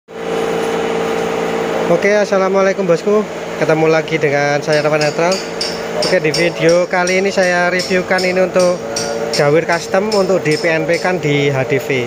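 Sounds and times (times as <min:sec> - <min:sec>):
steady machine hum: 0:00.1 - 0:12.0
person speaking: 0:01.9 - 0:12.0.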